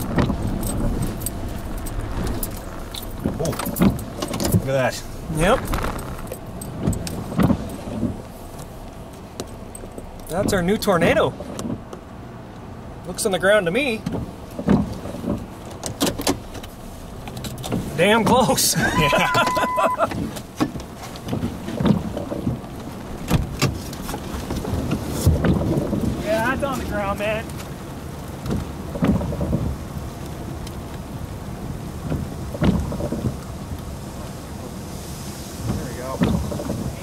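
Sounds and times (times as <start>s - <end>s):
thunder rumble: 0.0s - 8.9s
low steady rumble: 0.0s - 15.8s, 16.4s - 37.0s
rain and wind: 0.0s - 37.0s.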